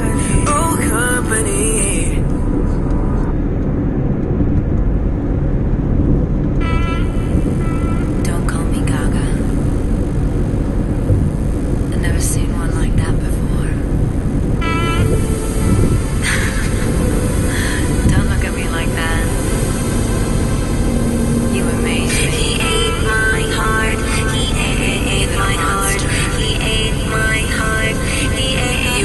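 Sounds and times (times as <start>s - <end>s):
car stereo music and voice: 0.0s - 2.4s, 8.2s - 10.0s, 11.9s - 29.0s
car road and engine rumble: 0.0s - 29.0s.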